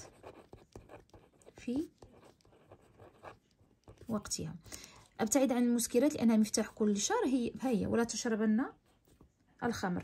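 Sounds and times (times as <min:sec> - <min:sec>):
pen writing on paper: 0:00.0 - 0:04.2.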